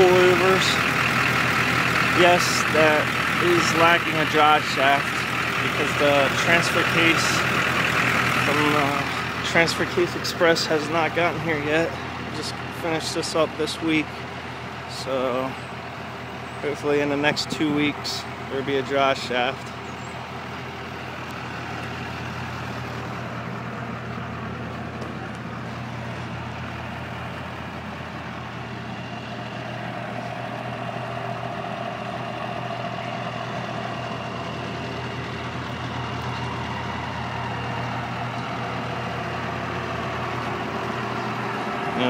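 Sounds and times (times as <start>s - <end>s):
diesel engine idling: 0.0s - 42.0s.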